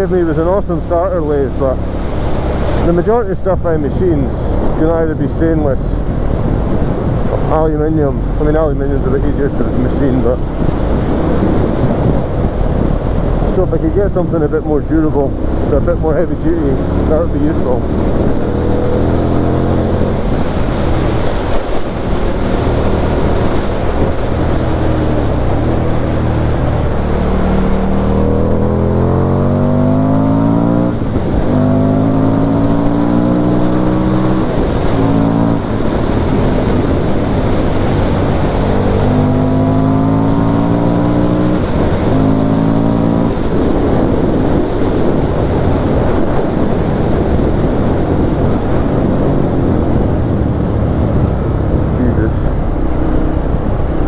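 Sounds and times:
wind rushing over microphone: 0.0s - 54.0s
motorcycle engine pulling hard: 15.0s - 54.0s.

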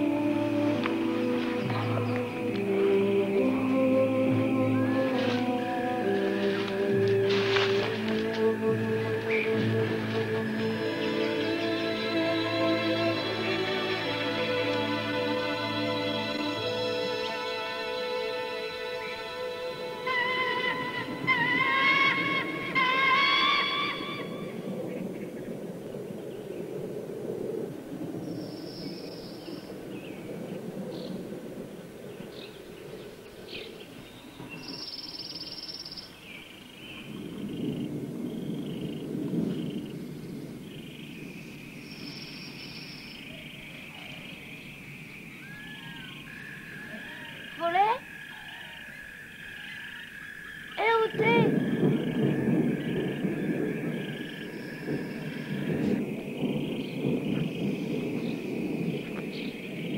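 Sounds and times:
film soundtrack music: 0.0s - 25.4s
rising whistled calls: 0.0s - 25.4s, 32.3s - 59.9s.

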